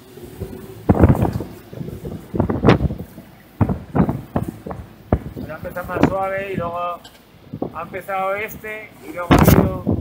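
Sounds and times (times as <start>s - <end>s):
boat and water rushing: 0.0s - 10.0s
wind buffeting microphone: 0.0s - 10.0s.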